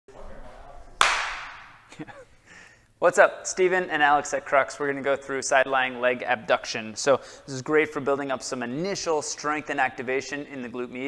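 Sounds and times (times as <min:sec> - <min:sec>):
sharp hand clap: 0:01.0 - 0:01.8.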